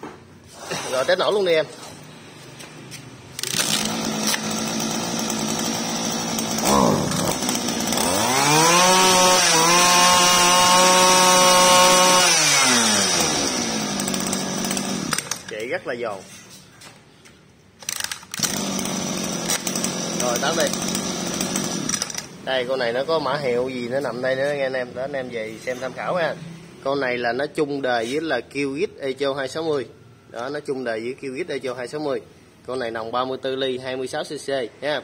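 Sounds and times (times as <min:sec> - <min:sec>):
brush cutter engine pull-started: 0:03.3 - 0:15.6, 0:17.8 - 0:22.4
brush cutter engine revving: 0:03.3 - 0:15.6, 0:17.9 - 0:22.4.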